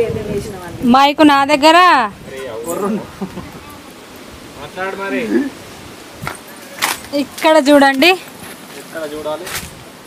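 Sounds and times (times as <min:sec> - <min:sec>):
people talking: 0:00.0 - 0:04.0, 0:07.1 - 0:08.3.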